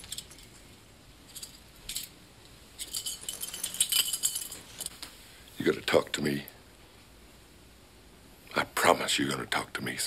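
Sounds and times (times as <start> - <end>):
metallic jingling and clinking: 0.0 - 2.2, 2.8 - 5.0.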